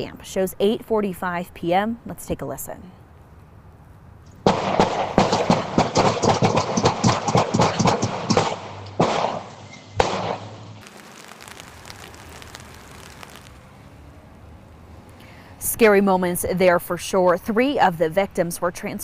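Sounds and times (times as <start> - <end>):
distant gunshots: 4.5 - 10.6.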